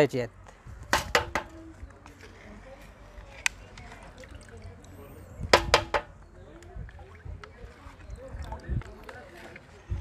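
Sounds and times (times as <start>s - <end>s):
water sloshing in steel bucket: 3.8s - 9.8s.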